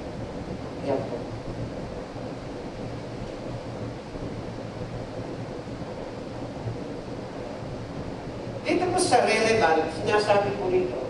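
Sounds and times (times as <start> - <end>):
faint low hum: 0.0 - 11.0
hall room hiss: 0.0 - 11.0.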